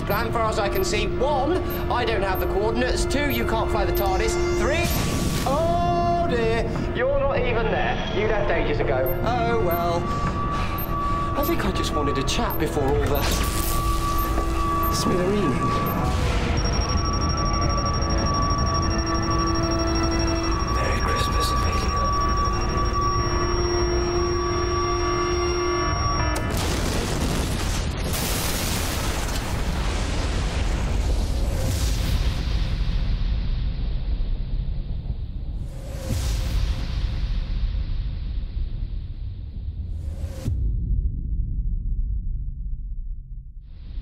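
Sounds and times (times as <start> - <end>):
thin high whine: 0.0 - 6.8, 7.4 - 26.6
low spaceship rumble: 0.0 - 26.3.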